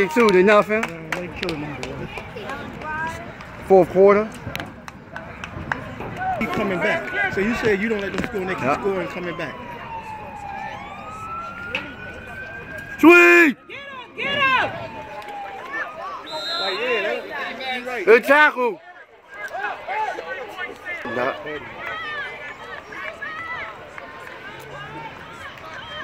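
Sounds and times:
siren wailing: 0:08.0 - 0:17.2.

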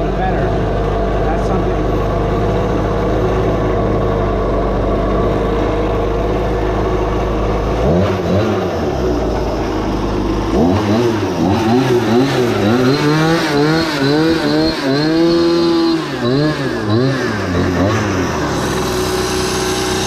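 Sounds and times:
go-kart engine idling and revving: 0:00.0 - 0:20.0.

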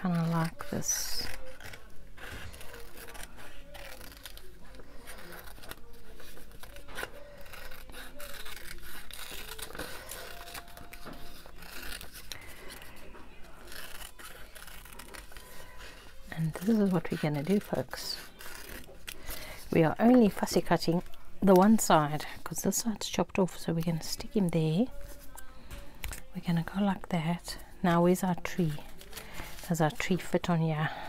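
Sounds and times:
scissors snipping paper: 0:00.0 - 0:21.8.

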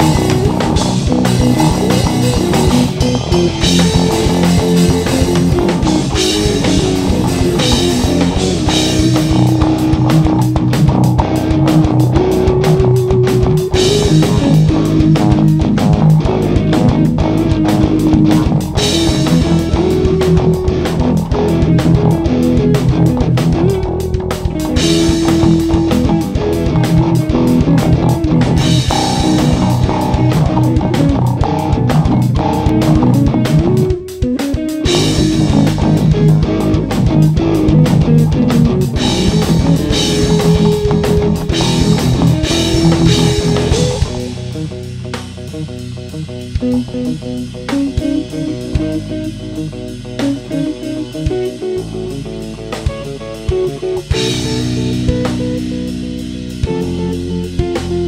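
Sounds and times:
bass guitar: 0:00.0 - 0:58.0
drums and cymbals: 0:00.0 - 0:58.0
electric guitar: 0:00.0 - 0:58.0.

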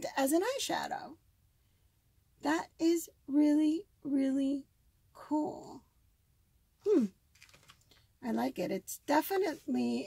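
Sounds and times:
person murmuring hmm: 0:06.8 - 0:07.1.

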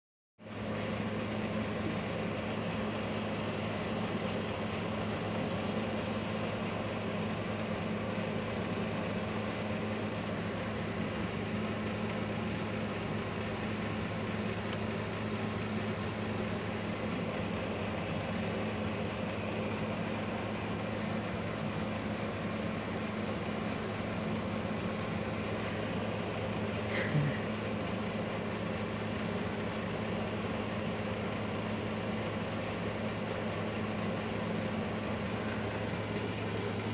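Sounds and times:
low mechanical hum: 0:00.4 - 0:36.9.

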